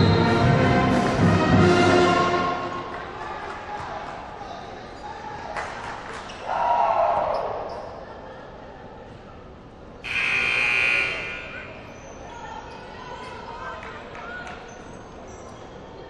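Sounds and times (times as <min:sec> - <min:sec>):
loud arena horn: 0:00.0 - 0:03.0, 0:10.0 - 0:11.9
voices in a gym: 0:02.7 - 0:16.0.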